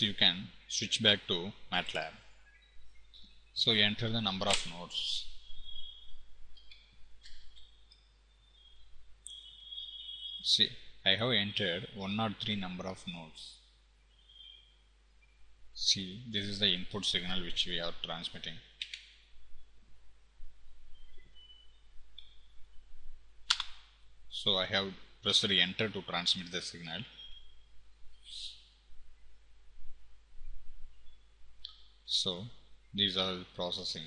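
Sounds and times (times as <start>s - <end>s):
low room hiss: 0.0s - 34.0s
computer keyboard keystrokes: 23.5s - 23.8s.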